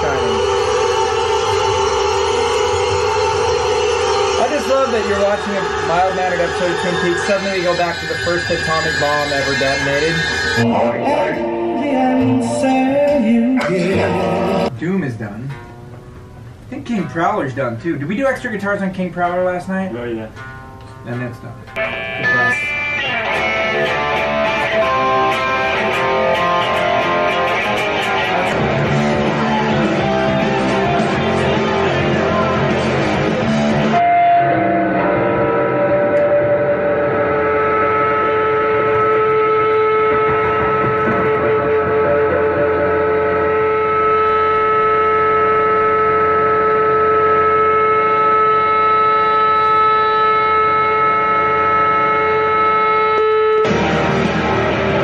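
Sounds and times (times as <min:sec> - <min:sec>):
distorted electric guitar: 0:00.0 - 0:55.0
guitar feedback tones: 0:00.0 - 0:55.0.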